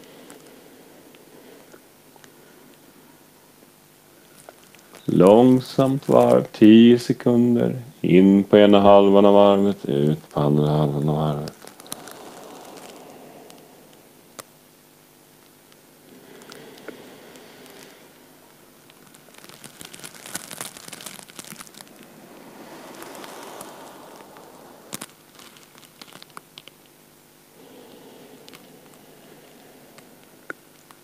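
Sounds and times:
crackling and rustling clicks: 4.2 - 6.4, 11.2 - 13.6, 15.4 - 27.0, 27.9 - 31.0
person breathing through nose: 11.5 - 14.5, 16.0 - 18.4, 21.0 - 25.7, 27.5 - 31.0.

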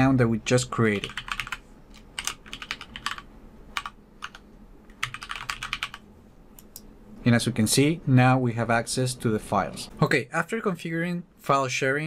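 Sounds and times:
keyboard typing: 0.9 - 6.0.

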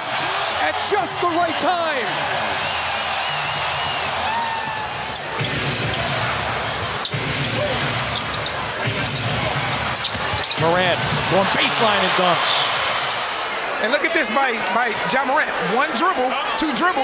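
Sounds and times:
arena crowd din: 0.0 - 17.0.

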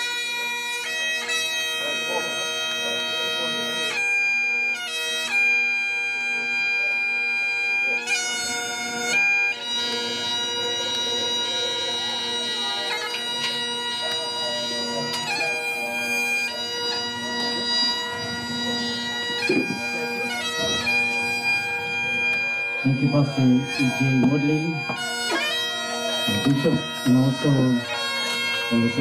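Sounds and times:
bagpipes playing slow tune: 0.0 - 29.0.

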